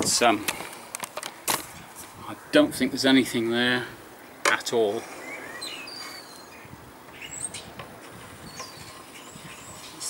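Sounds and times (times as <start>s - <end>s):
birds chirping: 0.0s - 10.0s.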